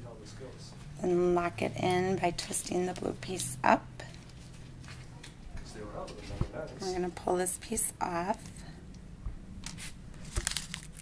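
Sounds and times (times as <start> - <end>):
plastic packaging crinkling: 9.7 - 11.0.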